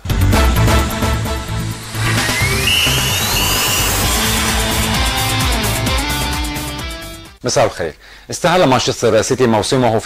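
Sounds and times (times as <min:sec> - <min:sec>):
rising electronic sweep: 0:00.4 - 0:07.1.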